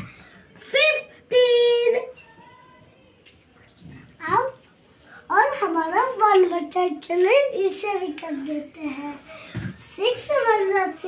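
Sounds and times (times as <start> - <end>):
young boy's voice: 0.0 - 2.8, 4.0 - 11.0.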